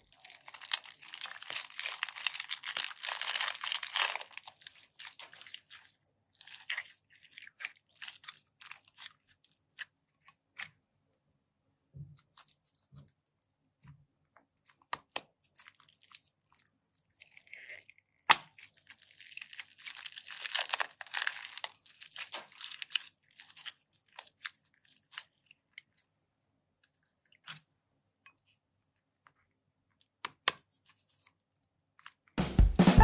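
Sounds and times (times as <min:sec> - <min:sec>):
plastic bag crinkling: 0:00.0 - 0:06.8, 0:18.7 - 0:25.2
bead-filled slime crackling: 0:00.0 - 0:10.8, 0:14.5 - 0:26.2.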